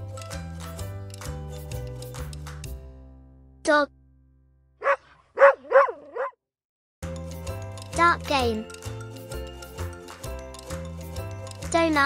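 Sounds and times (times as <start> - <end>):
dog barking: 4.8 - 6.4.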